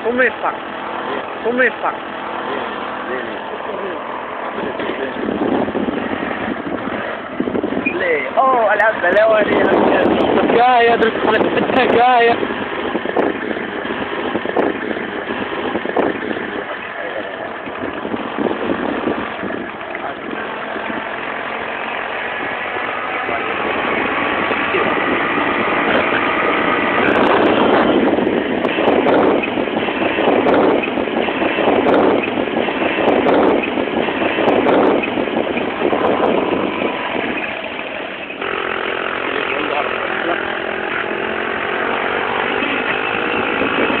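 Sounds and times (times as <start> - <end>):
vehicle engine running: 0.0 - 44.0.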